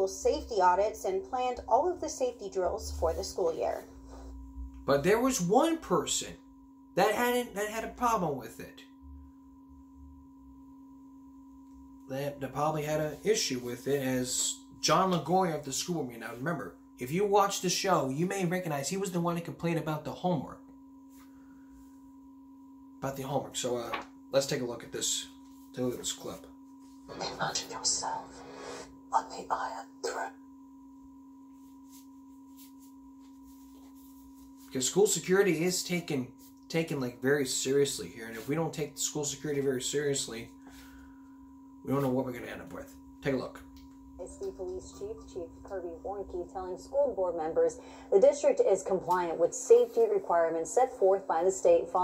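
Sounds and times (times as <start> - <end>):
two-tone hum: 0.0 - 52.0.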